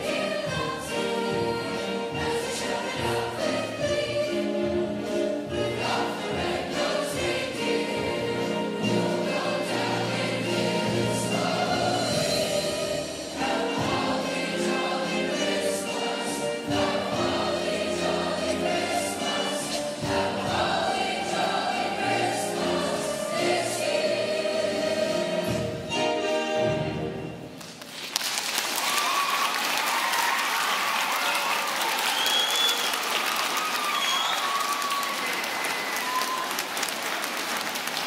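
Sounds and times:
young choir singing: 0.0 - 27.4.

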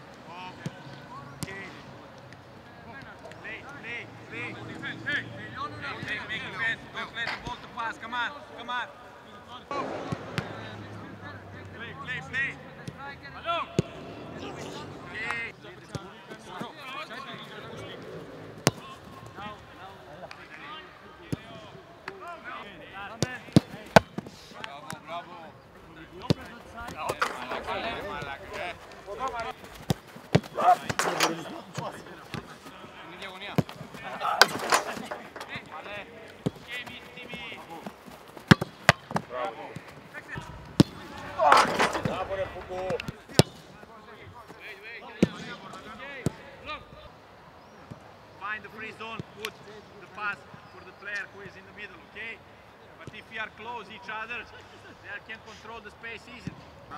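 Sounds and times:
players shouting: 2.8 - 46.9
footballs kicked with sharp thuds: 9.7 - 10.8, 18.6 - 19.4, 26.2 - 43.8.

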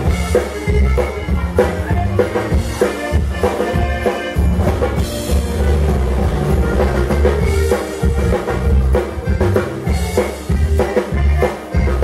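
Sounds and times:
button accordion: 0.0 - 12.0
drums keeping a steady beat: 0.0 - 12.0
electric bass: 0.0 - 12.0.

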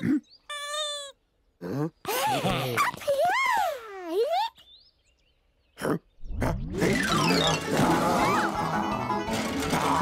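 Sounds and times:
high-pitched cartoon voice: 0.5 - 4.6.

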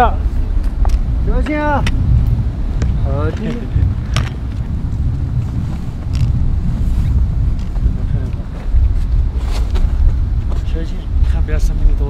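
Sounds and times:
wind buffeting microphone: 0.0 - 12.0
trekking poles clicking: 0.6 - 6.6
footsteps on snowy rock: 4.3 - 10.7.

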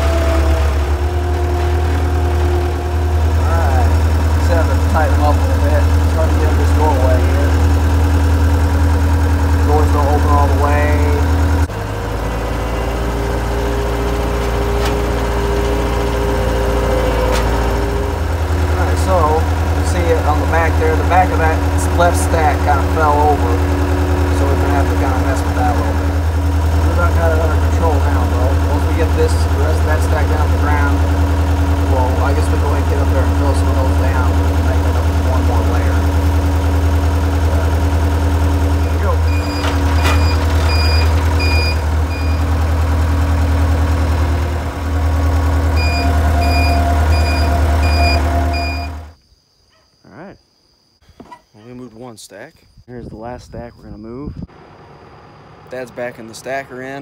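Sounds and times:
skid steer engine running: 0.0 - 49.2, 54.5 - 57.0.

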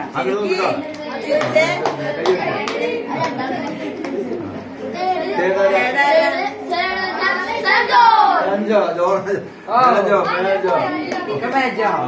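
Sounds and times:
people chattering indistinctly: 0.0 - 12.0.

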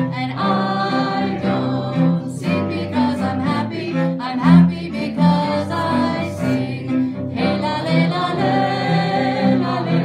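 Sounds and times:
bowed cello long notes: 0.0 - 10.0.

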